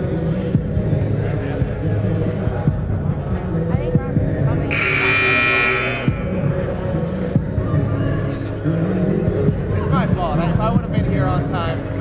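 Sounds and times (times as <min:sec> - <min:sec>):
voices in a gym: 0:00.0 - 0:12.0
scoreboard buzzer: 0:04.7 - 0:06.4.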